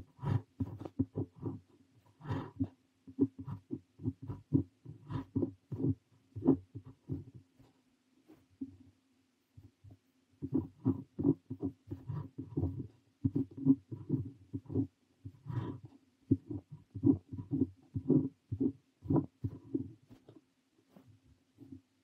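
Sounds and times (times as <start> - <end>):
pen nib scratching on paper: 0.0 - 8.7, 9.5 - 21.9
faint steady hum: 0.0 - 22.0.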